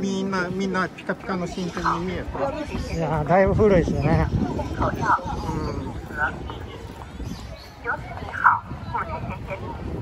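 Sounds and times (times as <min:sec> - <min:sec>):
passers-by talking: 0:00.0 - 0:10.0.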